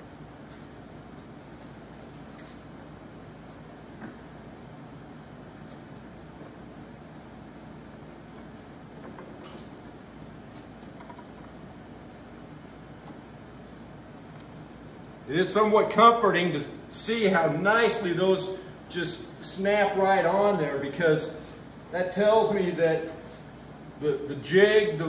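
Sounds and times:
workshop room hum: 0.0s - 25.0s.

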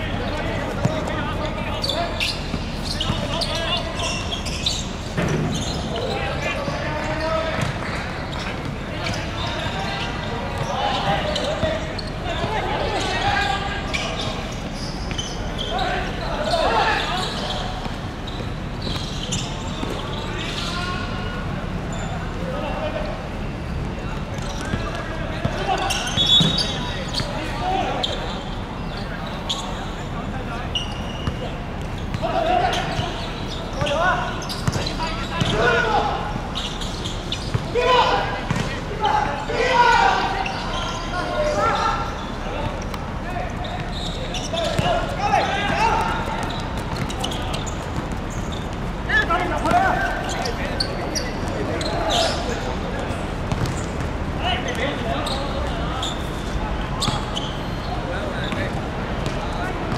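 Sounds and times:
players shouting: 0.0s - 23.3s, 24.2s - 59.9s.

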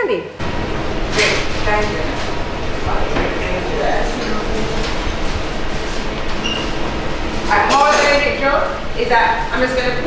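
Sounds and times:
steady rumbling hum: 0.0s - 10.0s
background chatter: 1.1s - 6.1s.

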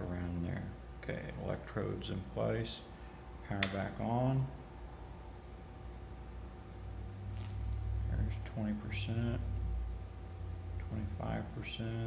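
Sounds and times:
high-voltage supply humming: 0.0s - 12.0s.

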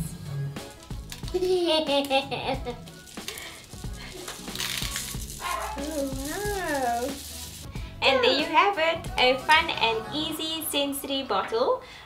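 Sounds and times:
soft background music: 0.0s - 12.0s
sequins rattling into bottle: 2.8s - 7.7s.

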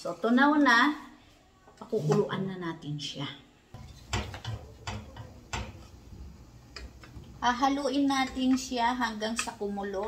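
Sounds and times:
spoon knocking pot side: 3.8s - 5.9s
spoon stirring liquid in pot: 3.8s - 10.0s.

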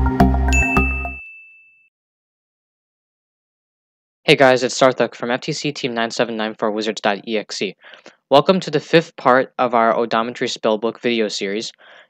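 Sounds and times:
intro music: 0.0s - 1.2s
high chime ringing: 0.5s - 1.9s.

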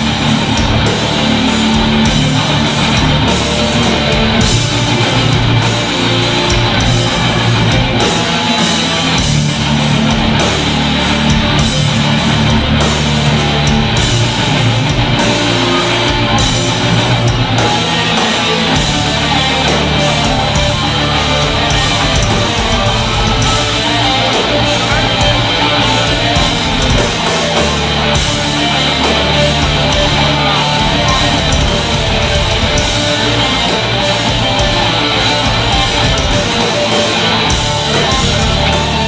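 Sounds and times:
bass guitar: 0.0s - 39.0s
distorted electric guitars: 0.0s - 39.0s
drum kit with cymbals: 0.0s - 39.0s.

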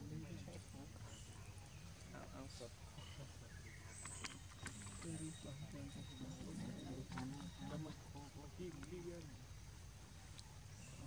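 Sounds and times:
indistinct low voices talking: 0.0s - 11.0s.

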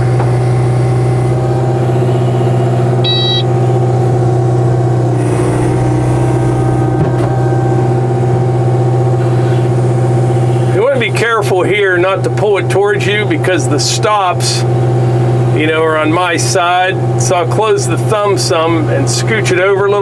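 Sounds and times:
excavator diesel engine running: 0.0s - 20.0s
short electronic beep: 3.0s - 3.6s.

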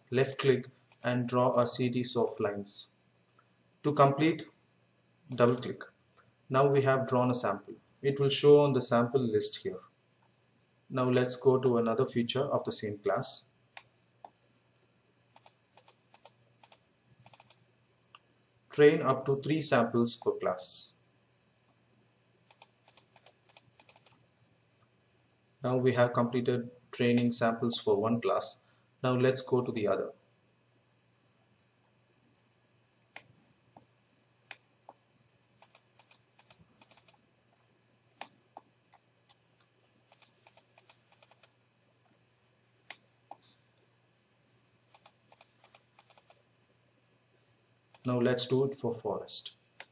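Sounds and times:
computer mouse clicking: 0.2s - 2.5s, 5.3s - 6.3s, 15.4s - 18.2s, 22.0s - 24.2s, 29.6s - 29.9s, 35.6s - 37.2s, 38.2s - 41.6s, 42.8s - 43.4s, 44.9s - 46.4s, 47.9s - 48.2s.

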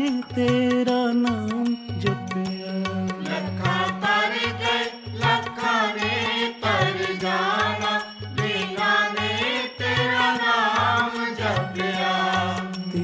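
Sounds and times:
drum beat with sharp strokes: 0.0s - 13.0s.

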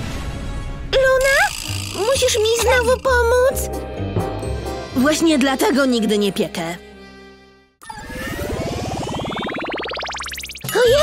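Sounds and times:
pulsing tone rising in pitch: 7.8s - 10.8s.

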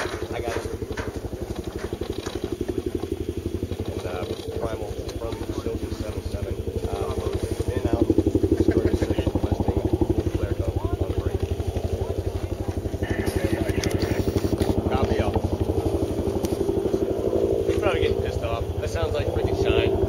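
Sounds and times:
faint voices: 0.0s - 20.0s
helicopter rotor beating: 0.0s - 20.0s.

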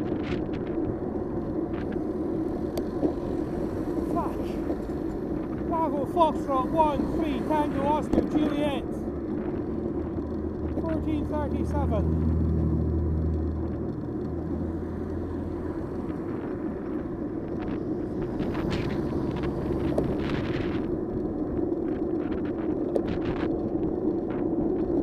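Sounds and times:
car engine hum: 0.0s - 25.0s
wind and road rumble: 0.0s - 25.0s.

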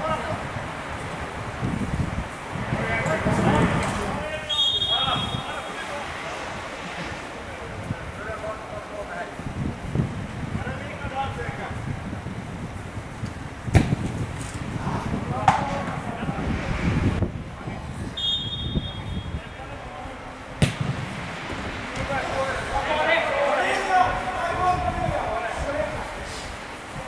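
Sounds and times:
wind rumble on microphone: 0.0s - 23.1s, 23.9s - 27.0s
players shouting: 2.6s - 9.4s, 14.8s - 16.8s, 18.2s - 27.0s
high whistle: 4.4s - 5.8s, 18.1s - 19.4s
ball being kicked: 13.7s - 14.2s, 15.4s - 16.1s, 20.6s - 21.1s.

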